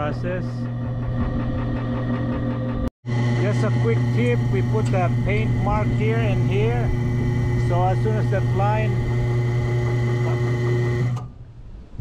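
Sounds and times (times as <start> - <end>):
winch motor humming: 0.0 - 11.3.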